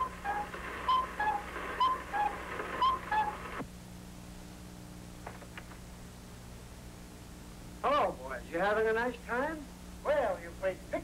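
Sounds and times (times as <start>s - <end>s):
film soundtrack hum and hiss: 0.0s - 11.0s.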